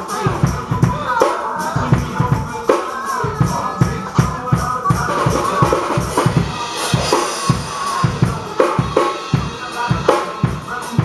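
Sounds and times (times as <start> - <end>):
band music with melody: 0.0 - 11.0
cymbals: 0.0 - 11.0.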